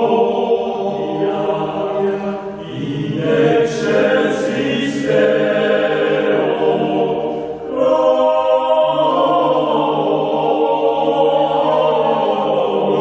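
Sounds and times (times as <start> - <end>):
male choir singing in harmony: 0.0 - 13.0.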